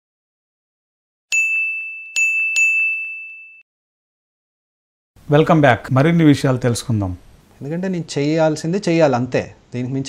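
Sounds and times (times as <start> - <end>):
bright bell-like dings: 1.3 - 3.7.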